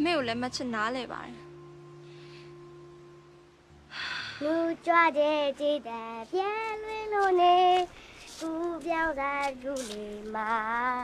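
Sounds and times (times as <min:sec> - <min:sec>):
high-pitched voice singing: 0:04.4 - 0:11.0.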